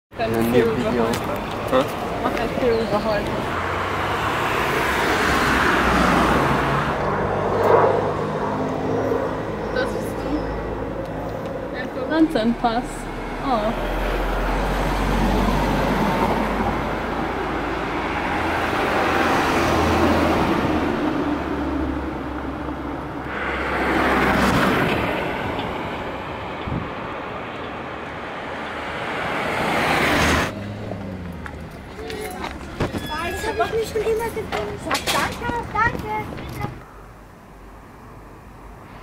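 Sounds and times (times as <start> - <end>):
vehicles passing: 0.1 - 39.0.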